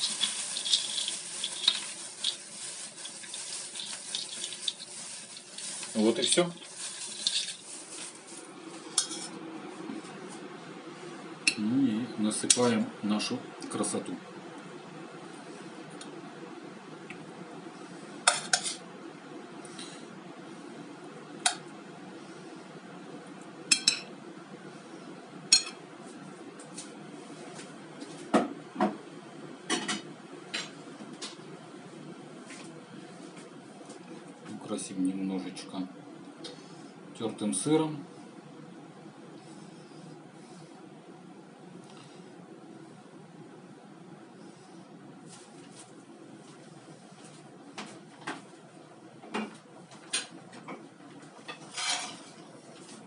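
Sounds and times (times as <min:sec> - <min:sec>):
dishes and cookware clattering: 0:09.0 - 0:09.4, 0:51.4 - 0:52.4.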